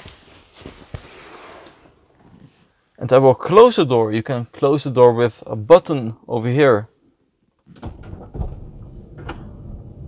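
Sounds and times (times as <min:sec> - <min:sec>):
sliding van door rumbling: 0:07.8 - 0:10.0.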